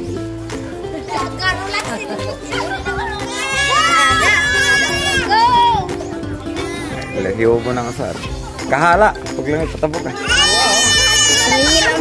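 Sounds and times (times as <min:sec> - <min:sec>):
busy background noise: 0:00.0 - 0:12.0.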